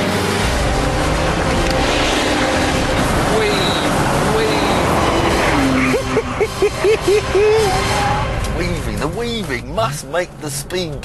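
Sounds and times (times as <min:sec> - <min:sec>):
car engine: 0:00.0 - 0:11.0
road noise: 0:00.0 - 0:11.0
man laughing loudly: 0:05.6 - 0:07.9.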